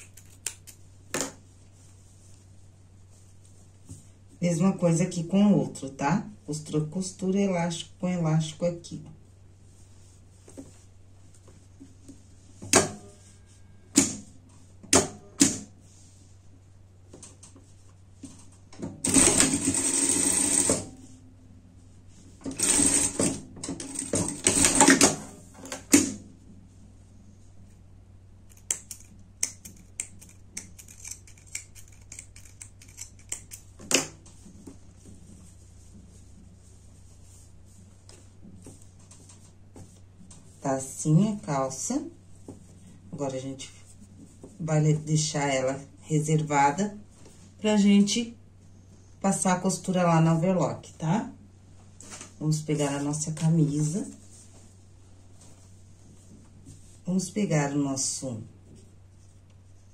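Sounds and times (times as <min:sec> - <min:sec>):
sewing machine stitching: 0:19.0 - 0:20.9, 0:22.5 - 0:25.2.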